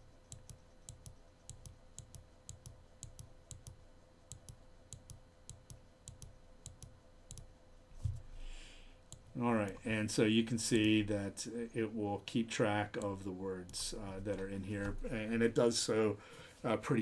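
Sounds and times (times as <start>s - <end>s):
faint steady hum: 0.0s - 17.0s
computer mouse clicking: 0.3s - 7.5s.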